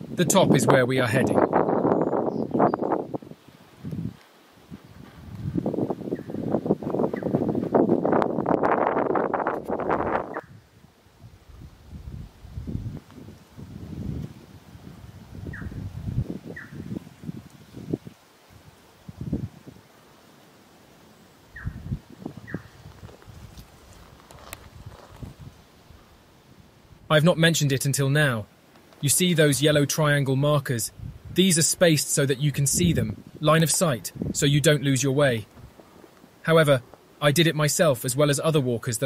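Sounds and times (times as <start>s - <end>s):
bird chirps: 1.9s - 2.9s, 15.5s - 15.8s, 16.5s - 16.9s, 21.5s - 21.8s, 22.4s - 22.8s
footsteps on sandy rocky track: 3.9s - 10.1s, 22.1s - 26.2s.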